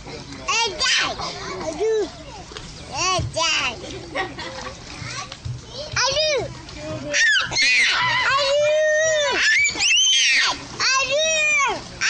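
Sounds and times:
faint background voices: 0.0s - 12.0s.

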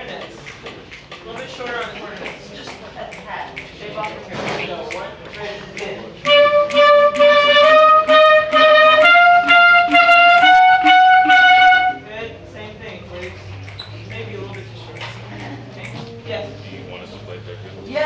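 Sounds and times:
low chatter: 0.0s - 18.0s
band wind instruments playing: 6.2s - 12.1s.

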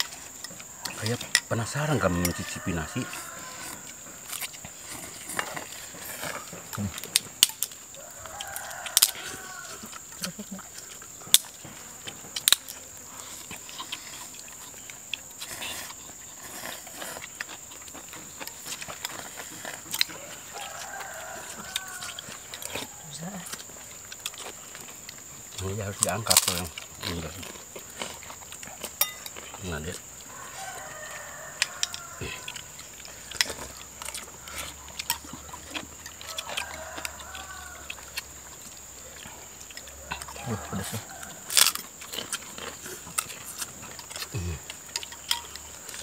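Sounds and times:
rooster crowing: 1.0s - 5.0s, 7.9s - 10.2s, 18.7s - 24.1s, 29.0s - 42.8s
spoons clinking against bowls: 29.0s - 29.4s.

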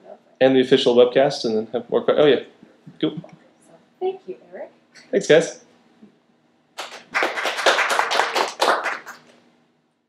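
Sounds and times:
audience applauding: 6.8s - 9.4s.

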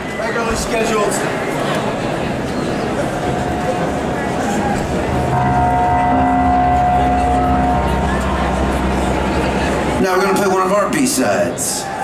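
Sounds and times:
concert crowd noise: 0.0s - 12.0s
low hum: 3.2s - 10.9s
band playing sustained chord: 4.8s - 11.4s.

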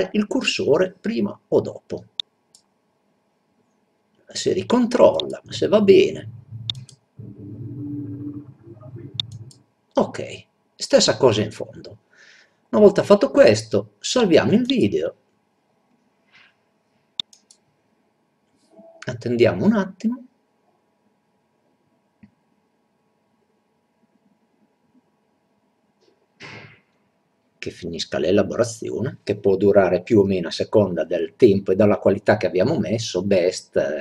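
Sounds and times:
computer mouse click: 6.6s - 7.0s, 9.2s - 9.6s, 17.2s - 17.6s.

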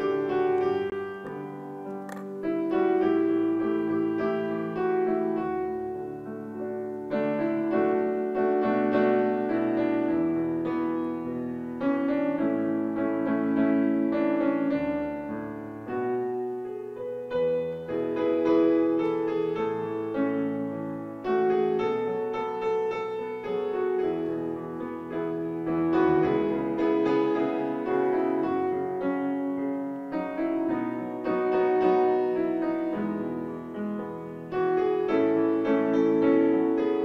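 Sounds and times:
solo piano chords: 0.0s - 37.0s
short click: 1.2s - 2.3s.

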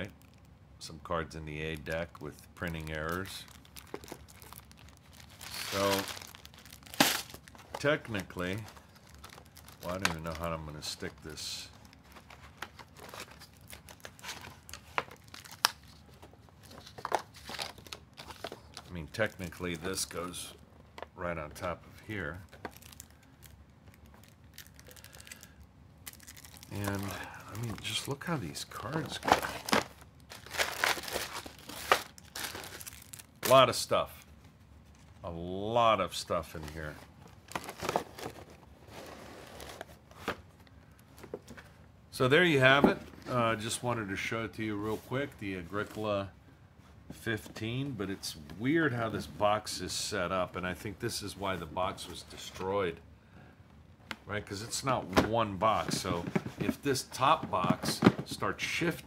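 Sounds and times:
cardboard scraping and rustling: 36.8s - 40.4s, 55.1s - 58.4s.

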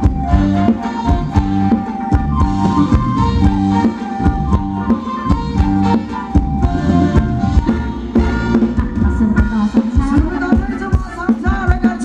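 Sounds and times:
live band music: 0.0s - 12.0s
steady drum beat: 0.0s - 12.0s.

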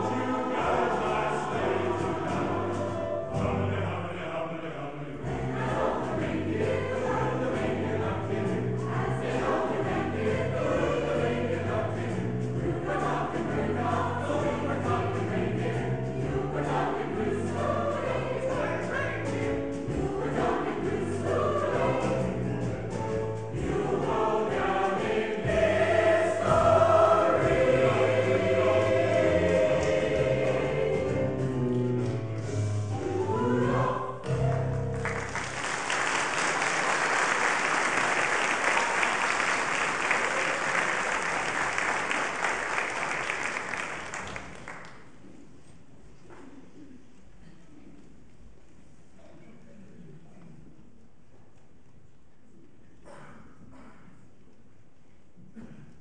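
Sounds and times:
choir singing: 0.0s - 31.8s, 32.9s - 34.8s
audience applauding: 34.6s - 45.0s.

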